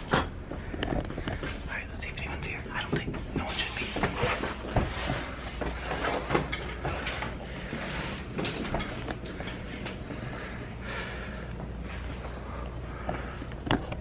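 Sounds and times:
footsteps: 2.8s - 10.4s.

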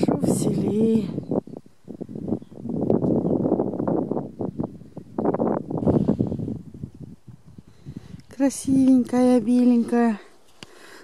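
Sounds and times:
wind buffeting microphone: 0.0s - 10.3s.

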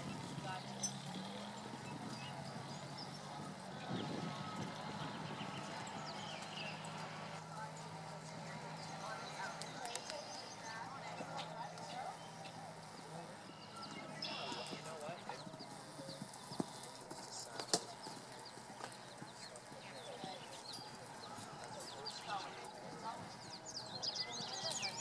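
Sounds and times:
birds chirping: 0.0s - 25.0s
faint voices: 0.0s - 25.0s
horse hoofbeats on sand: 0.0s - 25.0s.

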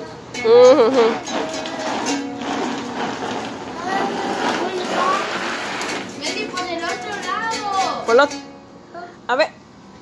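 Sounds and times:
toy ukulele strumming: 0.3s - 2.4s, 4.7s - 8.6s.

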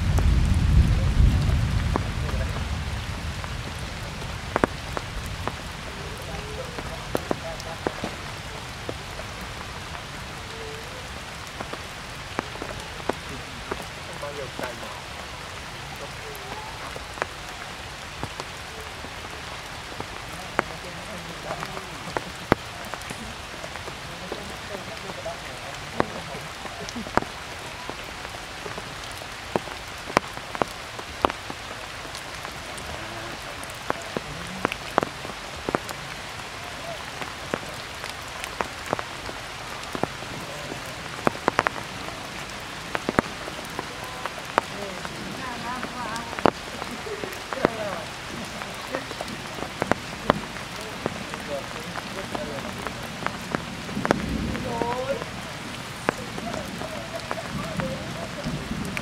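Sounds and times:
heavy rain on foliage: 0.0s - 59.0s
raindrops tapping: 0.0s - 59.0s.

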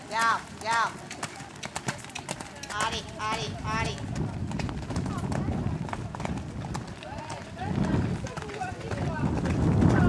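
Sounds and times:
hoofbeats on wet sand: 0.0s - 10.0s.

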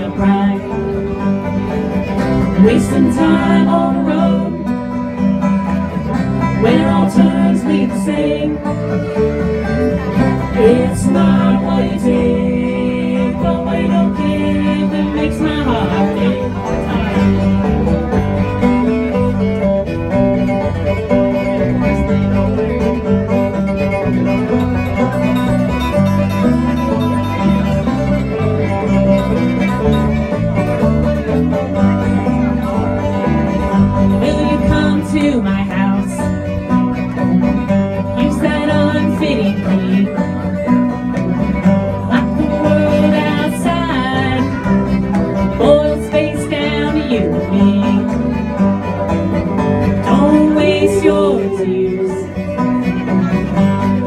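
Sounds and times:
acoustic guitar: 0.0s - 54.0s
banjo: 0.0s - 54.0s
fiddle: 0.0s - 54.0s.

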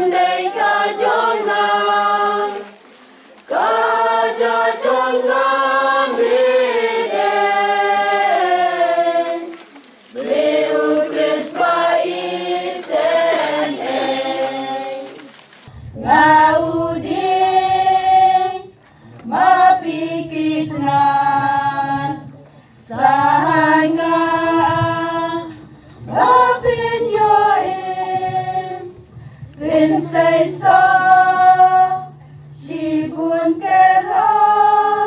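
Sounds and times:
choir singing a hymn: 0.0s - 2.8s, 3.4s - 35.0s.

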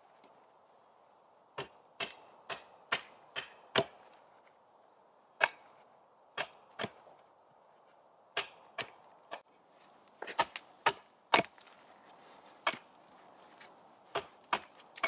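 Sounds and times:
axe chopping wood: 1.6s - 4.1s, 5.4s - 5.8s, 6.4s - 7.1s, 8.3s - 9.4s, 10.2s - 11.8s, 12.6s - 12.9s, 14.1s - 15.0s.

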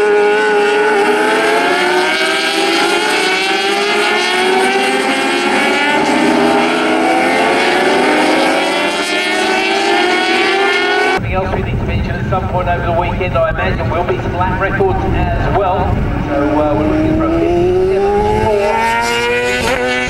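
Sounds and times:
racing motorcycles accelerating: 0.0s - 20.0s.

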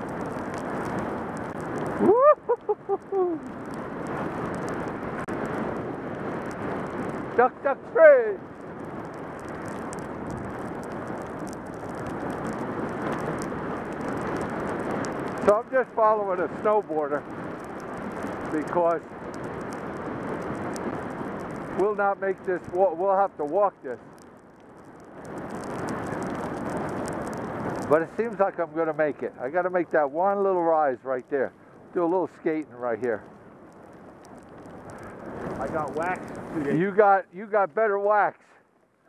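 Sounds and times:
skis gliding over packed snow: 0.0s - 39.0s.

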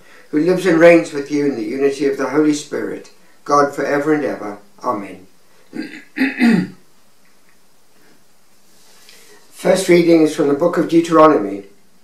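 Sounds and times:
man clearing his throat: 5.7s - 6.8s.

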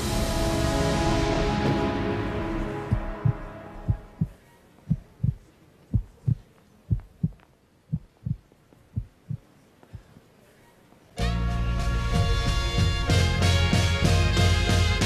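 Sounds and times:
music: 0.0s - 4.2s, 11.2s - 15.0s
heartbeat thumps: 2.8s - 10.2s.

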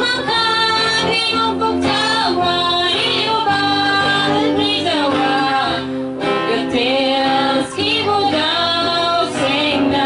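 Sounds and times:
acoustic guitar: 0.0s - 10.0s
women singing together: 0.0s - 10.0s.

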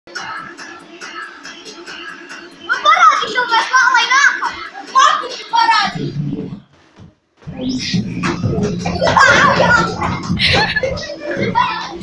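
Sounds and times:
children shouting and squealing: 2.7s - 6.1s, 8.8s - 12.0s.

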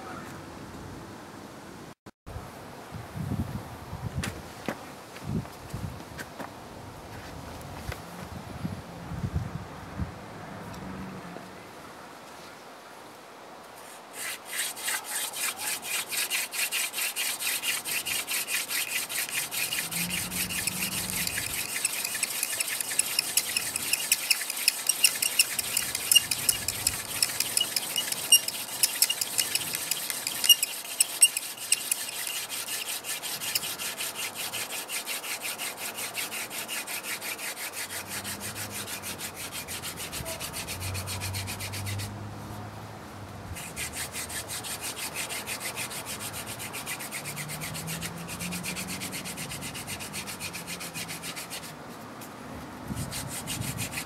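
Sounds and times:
sharp wooden squeaks: 14.2s - 34.0s
fire drill rubbing on wood: 14.2s - 42.0s.

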